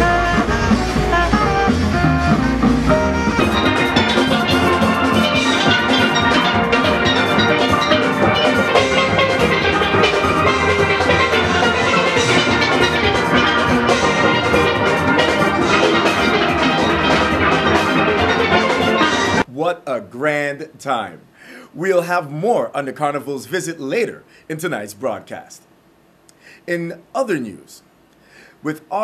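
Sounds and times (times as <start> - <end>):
steel band playing: 0.0 - 20.4.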